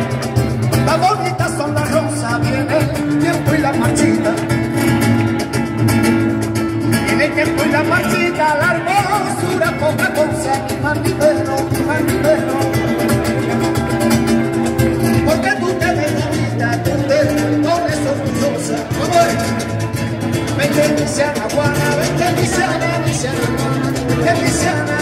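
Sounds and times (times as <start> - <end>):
flamenco guitar: 0.0 - 25.0.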